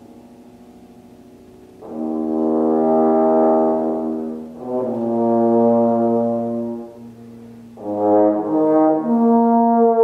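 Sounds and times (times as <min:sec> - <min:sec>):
bass trombone held notes: 0:01.7 - 0:10.0.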